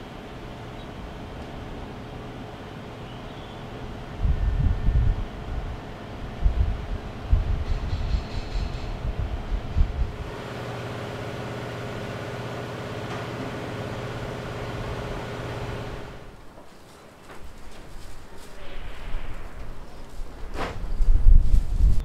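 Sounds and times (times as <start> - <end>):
low irregular rumbling: 0.0 - 22.0
mechanical hum with low drone: 0.0 - 22.0.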